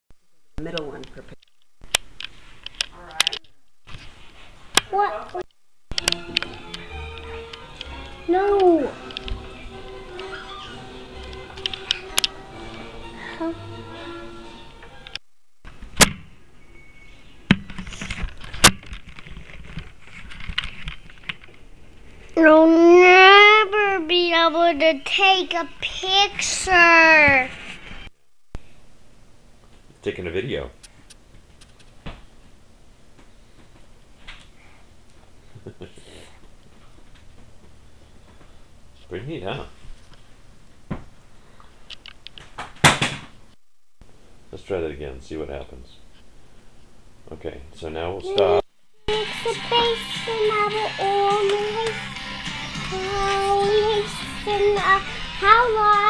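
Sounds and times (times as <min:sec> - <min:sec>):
sharp loud knock: 0:42.8 - 0:43.3.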